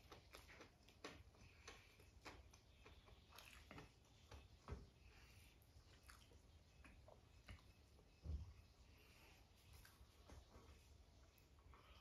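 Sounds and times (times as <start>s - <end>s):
mouth chewing food: 0.0s - 8.2s.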